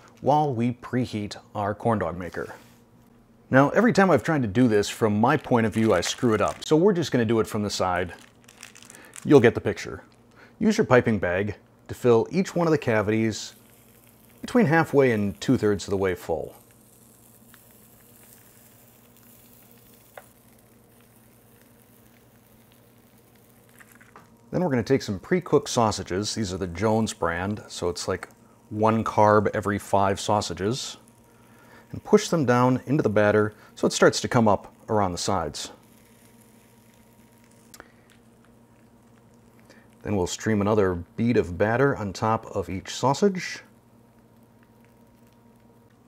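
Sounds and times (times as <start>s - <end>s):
low steady hum: 0.0s - 46.0s
soft handling sounds: 2.2s - 3.2s
batter sizzling on hot plates: 3.8s - 46.0s.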